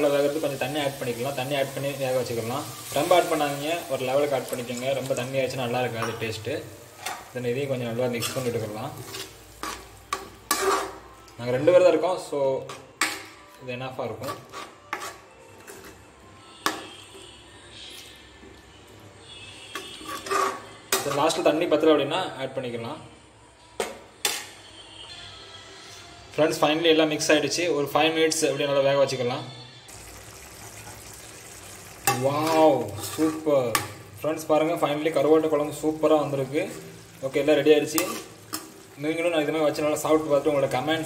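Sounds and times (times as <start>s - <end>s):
metal ladle scraping pan: 1.7s - 11.2s, 14.2s - 17.3s, 19.3s - 21.5s, 23.8s - 24.7s, 30.6s - 34.2s, 35.0s - 41.0s
curry simmering in a pan: 29.9s - 33.5s.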